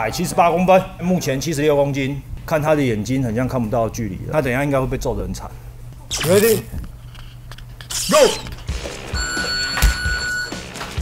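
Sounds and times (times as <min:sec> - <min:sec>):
long electronic timer beep: 0:09.2 - 0:10.6.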